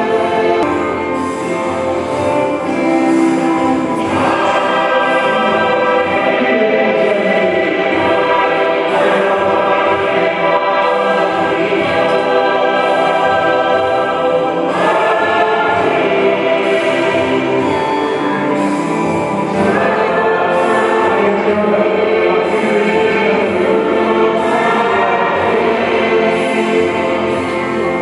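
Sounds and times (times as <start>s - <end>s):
congregation singing a hymn: 0.0s - 28.0s.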